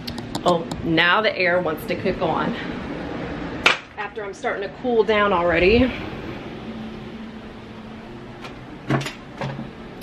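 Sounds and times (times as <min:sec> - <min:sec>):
air conditioning humming: 0:00.0 - 0:10.0.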